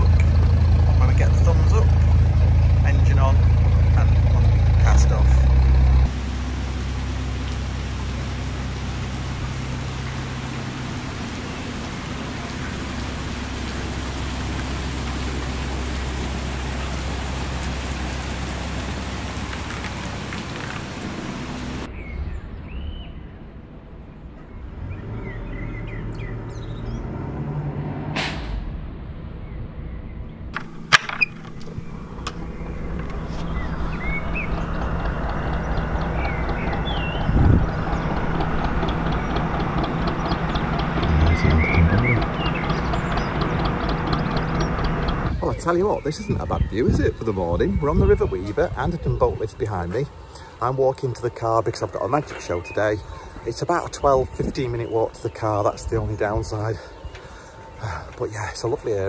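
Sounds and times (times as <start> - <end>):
boat engine running: 0.0 - 21.9, 30.6 - 59.0
birds chirping: 0.0 - 27.4, 29.3 - 59.0
rushing water and wind: 6.0 - 24.0, 30.6 - 59.0.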